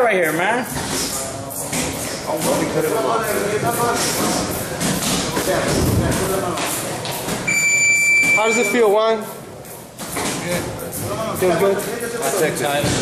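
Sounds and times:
high electronic beep: 7.5 - 8.9.

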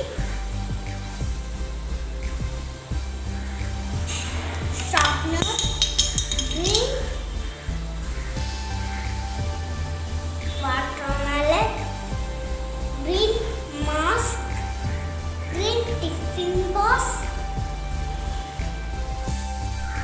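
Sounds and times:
music with low beat: 0.0 - 20.0
small objects clinking: 4.5 - 7.1
child's voice: 6.6 - 7.2, 10.6 - 11.9, 13.0 - 14.5, 15.5 - 17.3.

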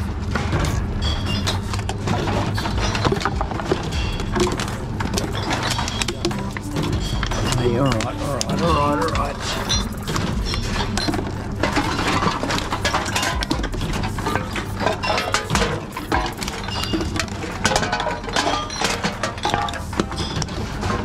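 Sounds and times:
glass bottles and cans clinking: 0.0 - 21.0
steady low hum: 0.0 - 21.0.

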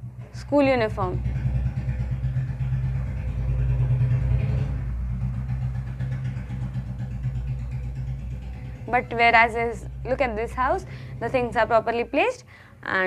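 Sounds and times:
engine rumbling with pulsing: 0.0 - 13.0.

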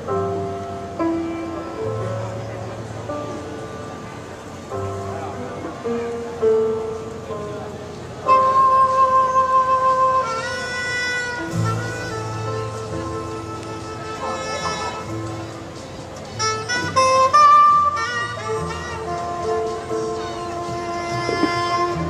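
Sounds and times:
piano: 0.0 - 22.0
saxophone melody: 8.2 - 22.0
drums: 11.4 - 14.0.

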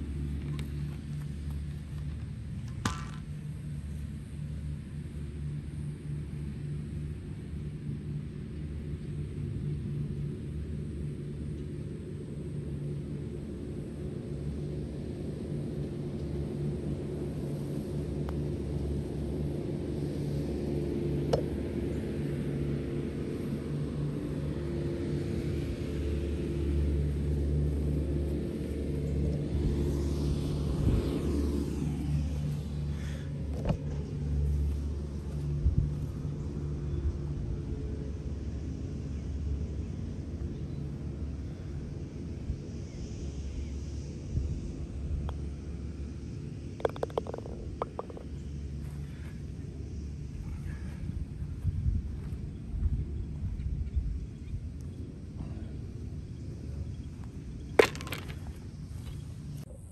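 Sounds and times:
engine humming: 0.0 - 59.9.

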